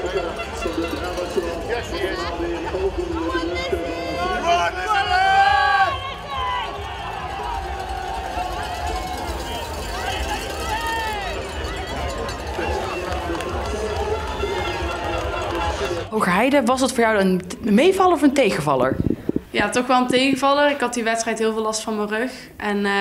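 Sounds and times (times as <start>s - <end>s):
spectators calling and cheering: 0.0s - 17.1s.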